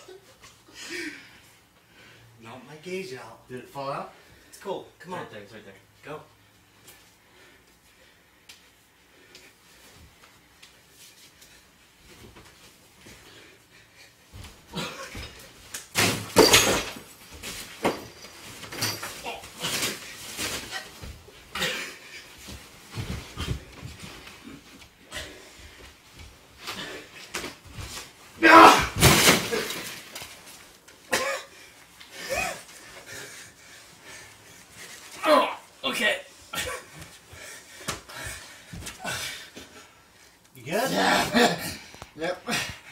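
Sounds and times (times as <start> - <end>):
bodies thudding on floor: 14.3 - 24.3, 26.2 - 30.2.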